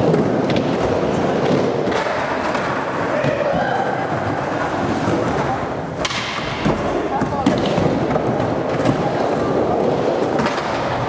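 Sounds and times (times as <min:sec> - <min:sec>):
skateboard wheels rolling on concrete: 0:00.0 - 0:11.0.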